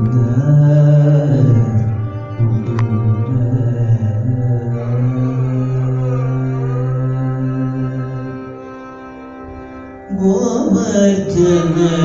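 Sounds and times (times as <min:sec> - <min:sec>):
man singing long held note: 0:00.0 - 0:08.5, 0:10.1 - 0:12.0.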